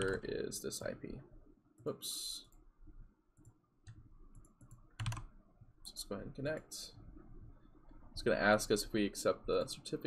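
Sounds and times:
keyboard and mouse clicks: 0.0s - 0.2s, 3.4s - 5.3s.

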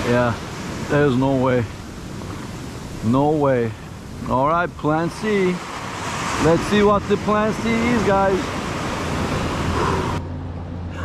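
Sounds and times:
surf breaking on beach: 0.0s - 10.2s.

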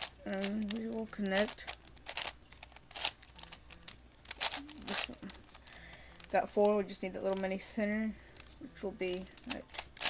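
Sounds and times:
plastic puzzle layers clicking: 0.0s - 7.6s, 8.3s - 10.0s.

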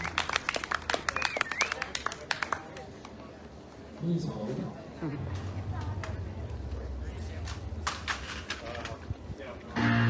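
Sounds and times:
audience clapping: 0.0s - 3.2s
voices among claps: 0.0s - 3.4s, 5.7s - 6.6s.

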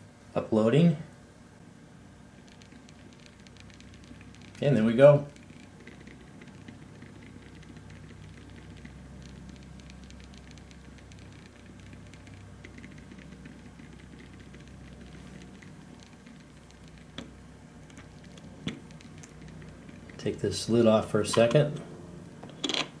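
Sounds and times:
low steady hum: 0.0s - 23.0s
sharp clicks: 2.4s - 20.3s
stepper motor ticking: 2.4s - 20.5s.

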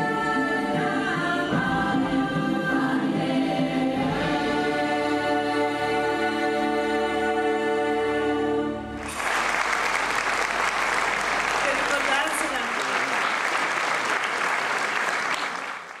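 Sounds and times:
orchestra and choir chord: 0.0s - 9.2s
audience applause: 9.0s - 16.0s.

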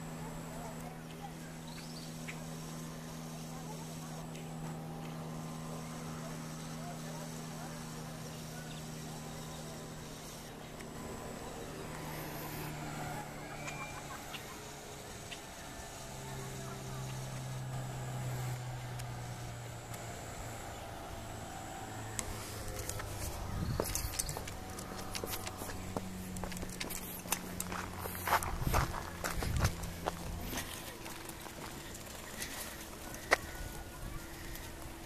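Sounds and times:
engine humming: 0.0s - 35.0s
footsteps on gravelly ground: 22.1s - 35.0s.

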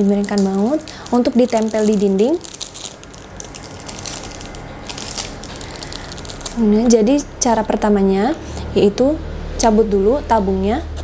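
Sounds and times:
plastic bag crinkling: 0.0s - 7.3s.

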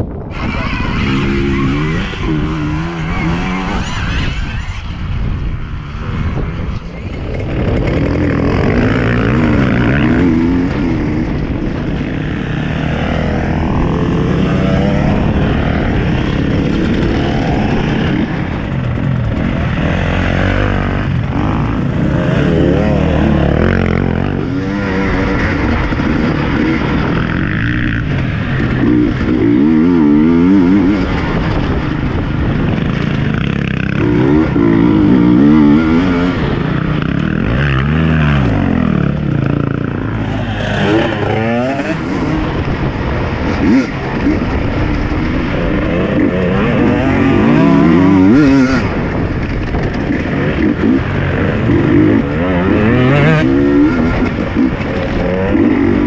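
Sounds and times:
dirt bike engine revving: 0.3s - 56.0s.

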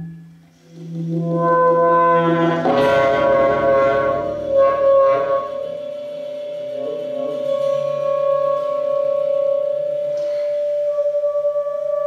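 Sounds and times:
low electronic drone: 0.0s - 12.0s
tenor saxophone long note: 0.0s - 12.0s
breathy puff: 10.2s - 10.7s.

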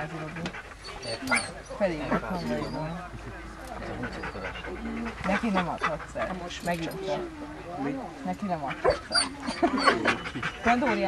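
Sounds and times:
dog panting: 0.0s - 7.4s, 8.3s - 11.0s
people talking quietly: 0.0s - 11.0s.

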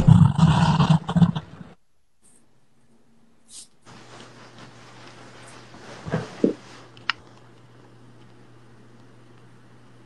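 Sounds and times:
low rumbling roar sound effect: 0.0s - 1.7s.

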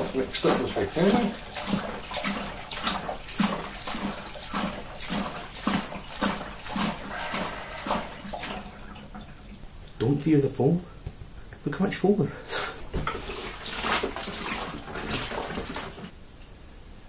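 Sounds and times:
water sloshing in plastic bucket: 0.0s - 10.1s, 12.8s - 16.2s.

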